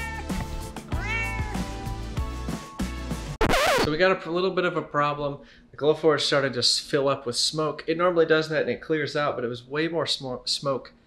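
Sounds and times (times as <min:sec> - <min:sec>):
cat meowing: 0:00.0 - 0:01.8
background music: 0:00.0 - 0:04.0.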